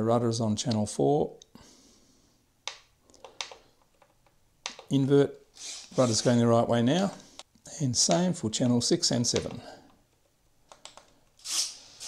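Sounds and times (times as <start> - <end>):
short rubbing hiss: 5.6 - 6.4, 11.4 - 12.0.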